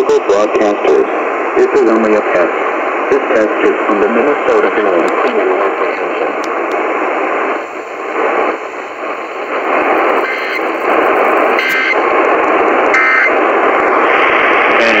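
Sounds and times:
radio static and hiss: 0.0s - 15.0s
tone data bursts: 7.6s - 13.4s.

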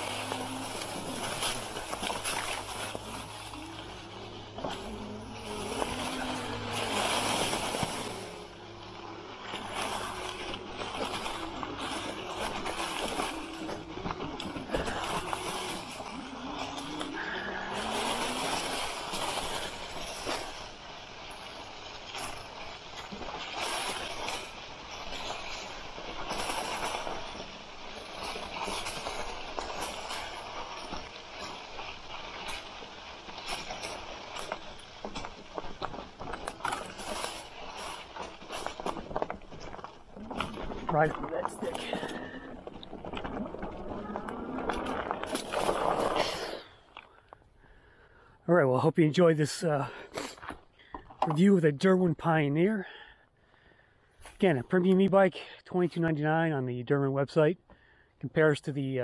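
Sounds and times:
electric motor whine: 0.0s - 20.6s
bike tyres crunching dry leaves: 0.0s - 47.5s.

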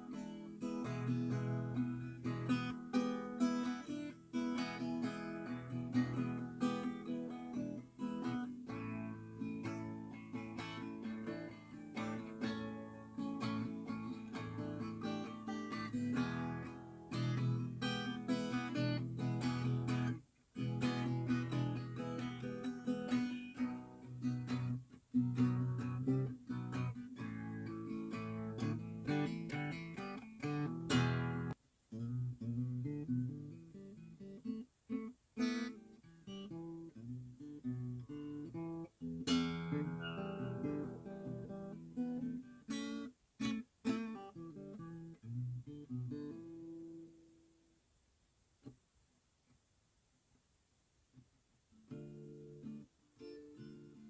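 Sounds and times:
acoustic guitar strumming: 0.0s - 47.1s, 51.9s - 54.0s.

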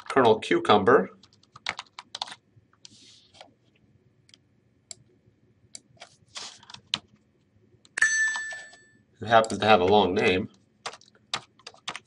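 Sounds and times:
computer alert chime: 8.0s - 8.8s.

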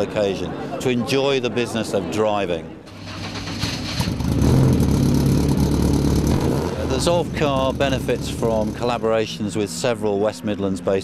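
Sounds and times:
sports car engine exhaust: 4.1s - 9.0s.

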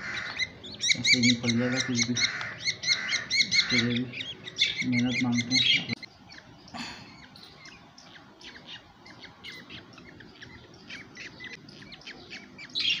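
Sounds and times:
baby budgerigars chirping: 0.0s - 13.0s.

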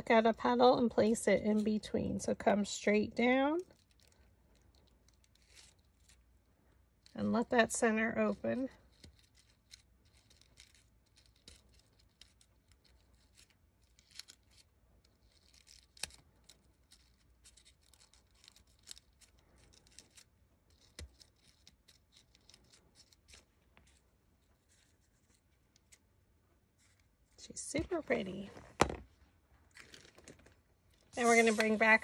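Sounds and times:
paper rustling and crinkling: 29.7s - 32.0s.

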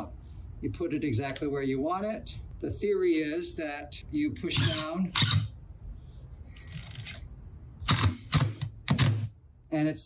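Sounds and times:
impact driver hammering: 7.8s - 9.4s.

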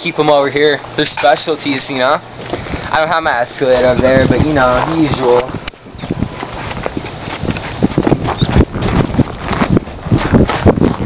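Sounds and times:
footsteps walking: 0.6s - 11.0s.

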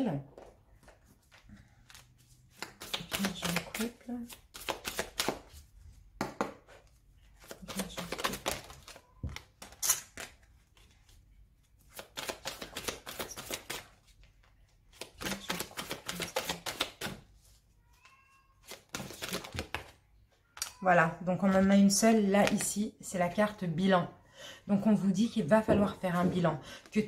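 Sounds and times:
cards being shuffled: 0.4s - 5.7s, 6.4s - 17.7s, 18.6s - 20.7s.

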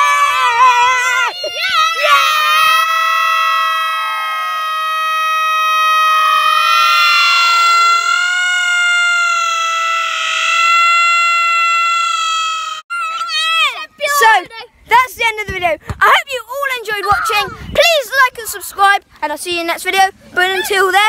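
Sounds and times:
boys' long high shout: 0.0s - 14.3s.

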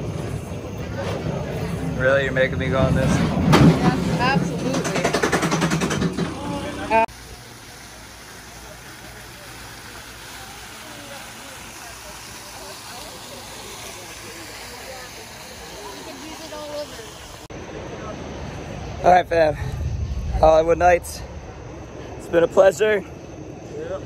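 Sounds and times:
distant voices: 0.0s - 24.0s
steady hiss: 5.6s - 24.0s.

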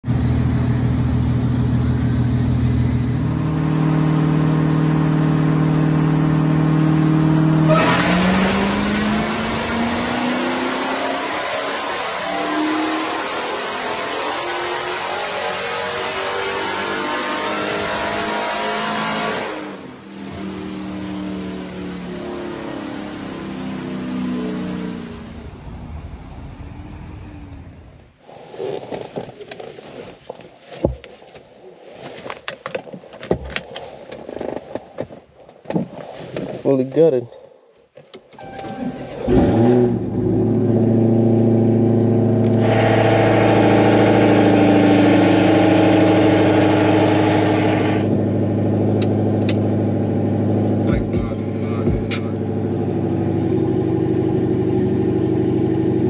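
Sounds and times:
car engine revving on dyno: 3.0s - 28.2s, 39.3s - 56.0s.

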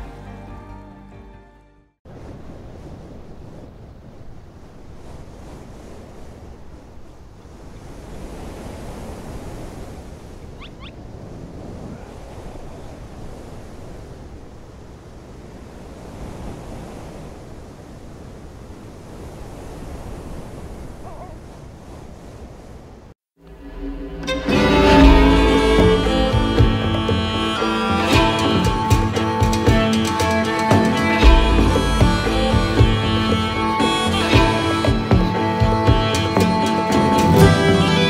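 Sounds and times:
surf washing on shore: 2.1s - 38.0s
wind buffeting microphone: 2.1s - 38.0s.

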